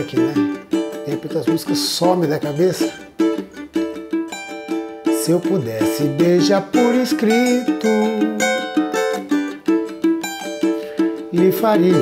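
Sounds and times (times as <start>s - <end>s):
person singing: 0.0s - 3.4s, 4.7s - 12.0s
small guitar strummed chords: 0.0s - 12.0s.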